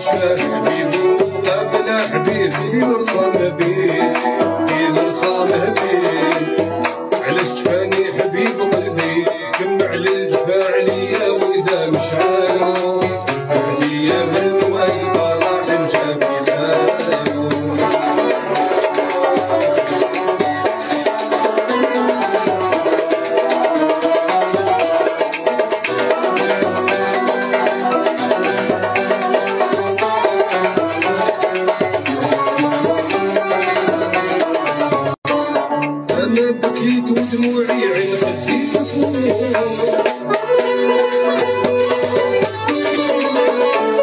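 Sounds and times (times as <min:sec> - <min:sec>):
banjos strumming: 0:00.0 - 0:44.0
oud melody: 0:00.0 - 0:44.0.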